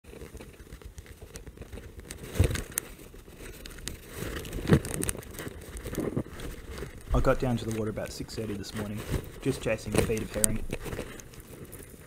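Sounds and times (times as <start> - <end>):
microphone handling knocks: 7.1 - 8.0
scattered clicks: 7.1 - 11.5.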